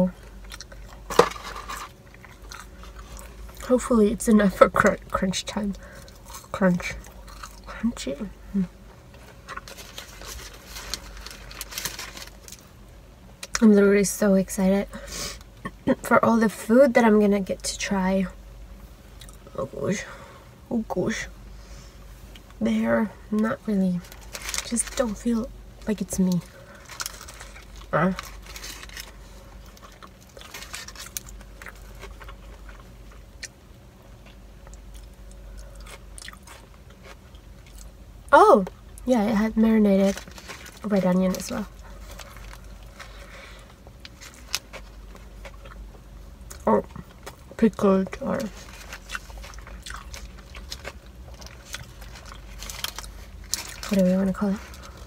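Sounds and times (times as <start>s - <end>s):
low steady hum: 0.0s - 55.0s
person chewing a burger: 0.1s - 3.6s, 5.8s - 7.7s, 8.8s - 12.7s, 26.4s - 38.0s, 41.7s - 47.6s, 48.4s - 54.0s.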